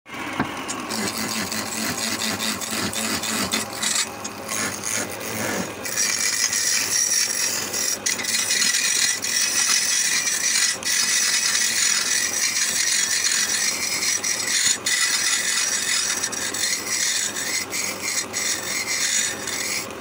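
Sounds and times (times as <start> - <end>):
chisel scraping spinning wood: 0.1 - 20.0.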